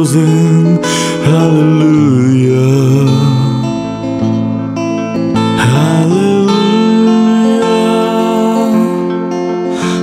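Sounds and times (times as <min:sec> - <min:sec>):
bass: 0:00.0 - 0:10.0
electric guitar chords: 0:00.0 - 0:10.0
keyboard: 0:00.0 - 0:10.0.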